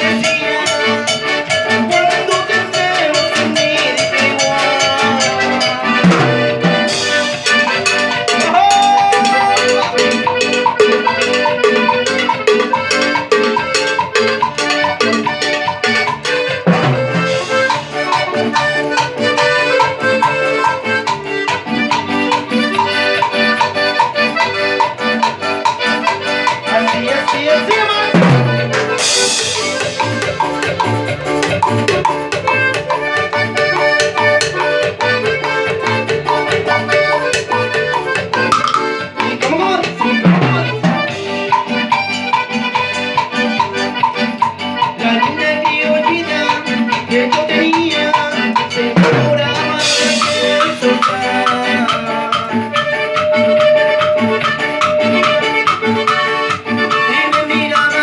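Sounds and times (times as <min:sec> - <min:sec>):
accordion melody: 0:00.0 - 0:58.0
drums and hand percussion: 0:00.0 - 0:58.0.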